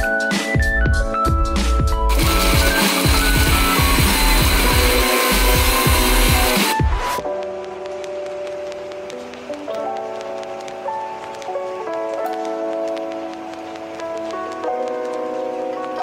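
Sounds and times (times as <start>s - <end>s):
music with drum beat: 0.0s - 7.3s
electric blender grinding: 2.1s - 7.1s.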